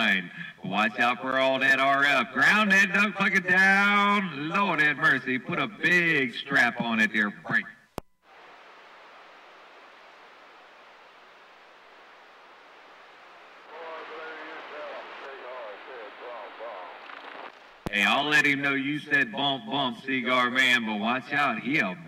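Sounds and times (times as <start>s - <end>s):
radio static hiss: 0.0s - 22.0s
faint voice over radio: 13.7s - 17.1s.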